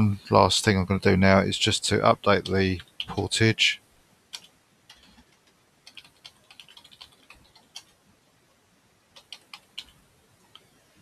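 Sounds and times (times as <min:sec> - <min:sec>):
typing on computer keyboard: 0:04.3 - 0:08.0, 0:09.2 - 0:10.7.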